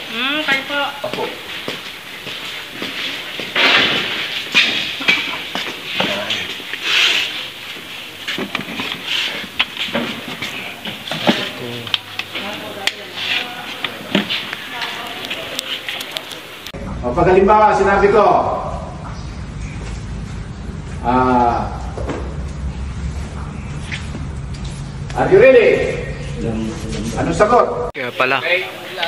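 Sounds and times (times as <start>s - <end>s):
people talking indistinctly: 11.6s - 16.8s.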